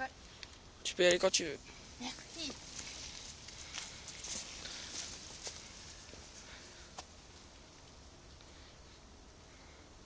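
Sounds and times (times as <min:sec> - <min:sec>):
bike tyres rolling over leaves: 0:01.8 - 0:08.7.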